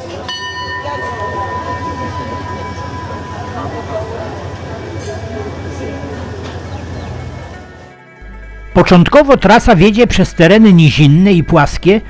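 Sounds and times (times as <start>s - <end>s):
hand bell ringing: 0.3s - 5.5s
train rumbling: 0.8s - 7.9s.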